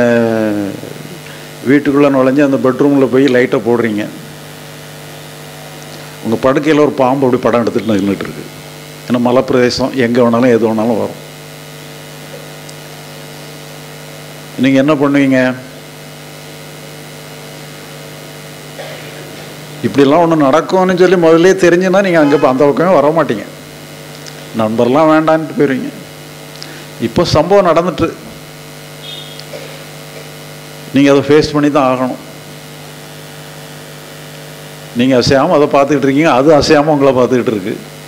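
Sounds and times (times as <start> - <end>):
faint amplifier hiss: 0.0 - 37.9
electrical hum: 0.0 - 38.0.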